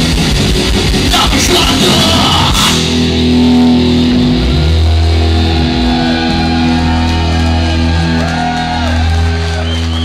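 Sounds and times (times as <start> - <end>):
drums and cymbals crashing: 0.0 - 8.4
electric guitars ringing chord: 0.1 - 9.6.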